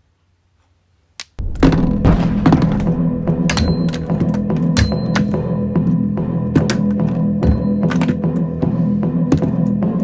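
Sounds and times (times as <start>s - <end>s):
explosion with deep rumble: 1.4s - 4.8s.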